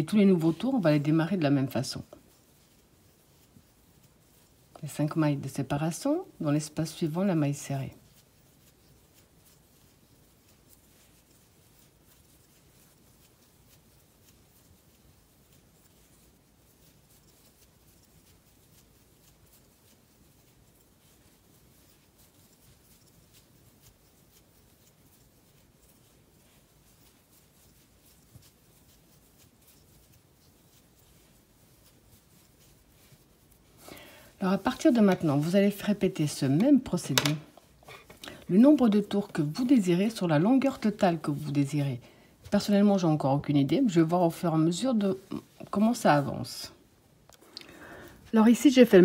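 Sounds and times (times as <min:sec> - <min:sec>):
crochet hook pulling yarn: 0:00.0 - 0:46.7.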